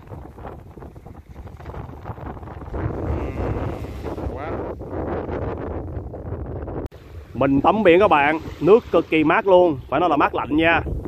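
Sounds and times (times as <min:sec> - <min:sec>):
shallow waves washing on shore: 0:00.0 - 0:11.0
wind buffeting microphone: 0:00.0 - 0:11.0.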